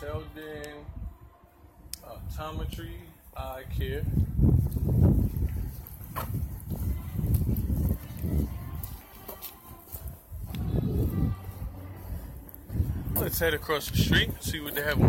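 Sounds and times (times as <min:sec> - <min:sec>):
wind rumbling on microphone: 0:00.0 - 0:15.0.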